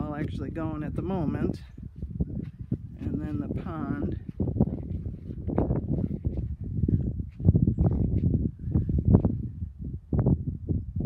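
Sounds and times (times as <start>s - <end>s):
microphone rumbling and thumping: 0.0s - 11.0s.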